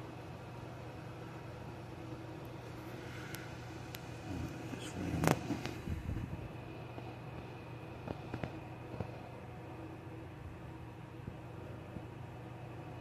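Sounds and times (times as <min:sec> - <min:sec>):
low machine hum: 0:00.0 - 0:13.0.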